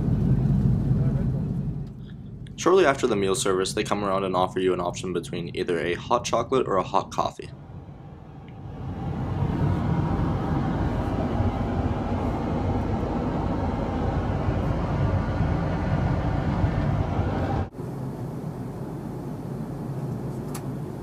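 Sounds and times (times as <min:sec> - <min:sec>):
aircraft in-flight roar: 0:00.0 - 0:21.0
cabin hum: 0:00.0 - 0:21.0.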